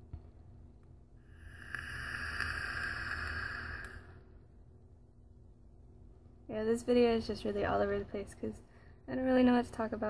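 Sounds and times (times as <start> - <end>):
vape draw air hiss: 1.2 - 4.2.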